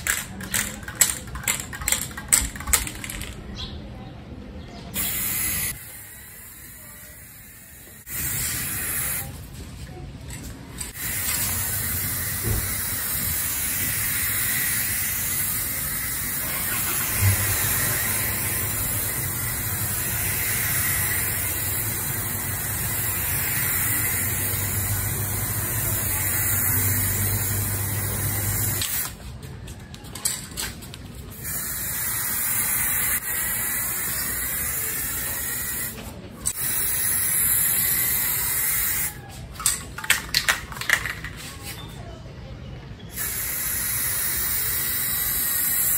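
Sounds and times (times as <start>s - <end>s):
spray-paint can hissing: 5.0s - 9.3s, 10.9s - 29.2s, 31.3s - 36.0s, 36.6s - 39.2s, 43.2s - 45.9s.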